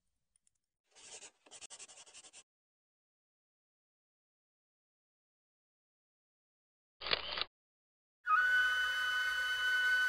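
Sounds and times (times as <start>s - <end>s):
pen writing on paper: 0.9s - 2.4s.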